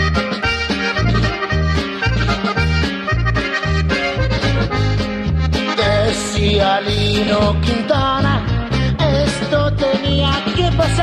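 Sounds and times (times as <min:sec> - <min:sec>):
accordion melody: 0:00.0 - 0:11.0
steady bass line: 0:00.0 - 0:11.0.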